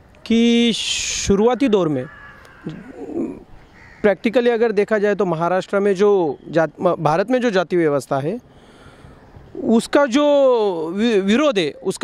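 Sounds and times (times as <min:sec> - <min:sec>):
crow cawing: 0:01.3 - 0:04.3.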